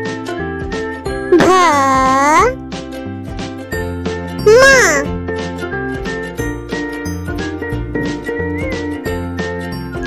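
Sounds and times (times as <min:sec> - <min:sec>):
children's music with tinkling tones: 0:00.4 - 0:10.0
high voice calling syllables: 0:01.3 - 0:02.6, 0:04.4 - 0:05.1.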